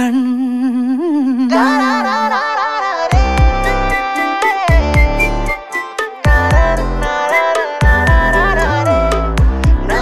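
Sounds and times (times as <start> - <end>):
voice humming a wavering melody: 0.0 - 10.0
brighter music layer: 3.0 - 10.0.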